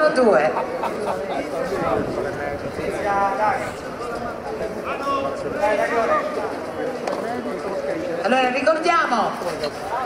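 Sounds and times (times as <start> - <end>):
crowd murmur: 0.0 - 10.0
people talking: 0.0 - 10.0.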